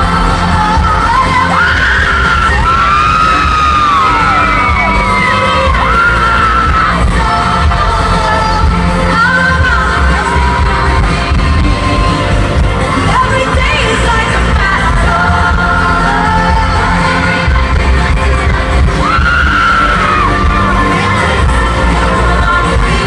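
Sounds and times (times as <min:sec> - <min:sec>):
live pop music with female vocal: 0:00.0 - 0:23.0.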